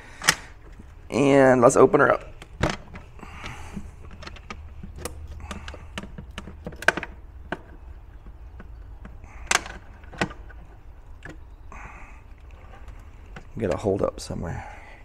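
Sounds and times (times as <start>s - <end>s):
plastic lid clicking and cracking: 2.3s - 10.6s.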